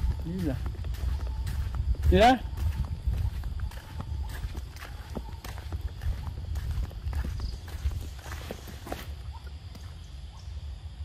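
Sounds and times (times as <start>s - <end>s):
footsteps on dirt path: 0.0s - 10.1s.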